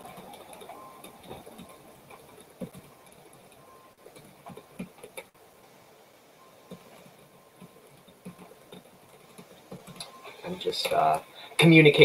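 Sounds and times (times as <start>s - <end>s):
computer keyboard typing: 0.0s - 5.3s, 6.7s - 11.2s.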